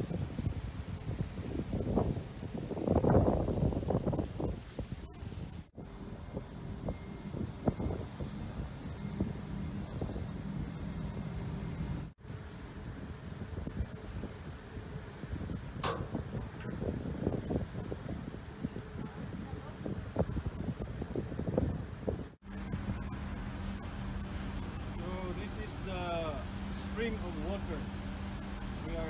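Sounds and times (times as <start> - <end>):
wind buffeting microphone: 0.0 - 27.8
steady low hum: 5.8 - 29.0
sea water rushing along hull: 22.6 - 29.0.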